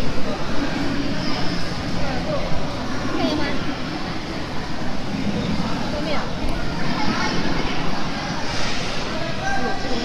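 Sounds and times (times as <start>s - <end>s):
indistinct chatter of voices: 0.0s - 10.0s
steady background hum: 0.0s - 10.0s.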